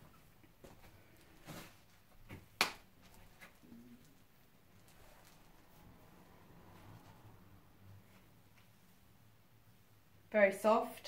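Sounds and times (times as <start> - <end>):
soft rustles: 0.0 - 2.4, 3.0 - 9.2.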